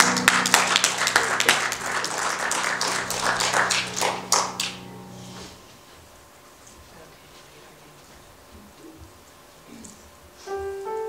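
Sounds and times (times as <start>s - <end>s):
people applauding: 0.0s - 5.1s
low held keyboard note: 0.0s - 5.9s.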